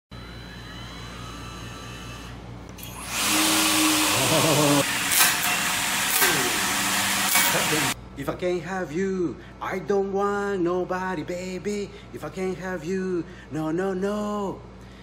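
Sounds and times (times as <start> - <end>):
electric trimmer motor whine: 0.1 - 8.0.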